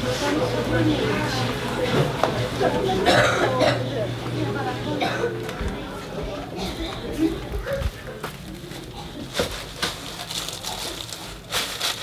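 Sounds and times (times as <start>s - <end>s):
person coughing: 3.0s - 3.9s, 5.0s - 5.4s.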